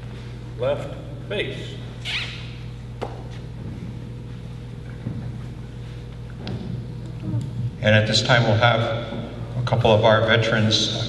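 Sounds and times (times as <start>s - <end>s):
steady low hum: 0.0s - 11.0s
brief squeak: 2.0s - 2.6s.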